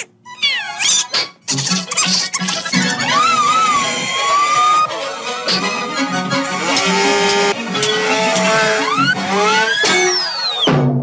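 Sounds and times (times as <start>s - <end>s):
cartoon duck voice squawking: 0.0s - 5.0s
orchestral cartoon music: 0.2s - 10.4s.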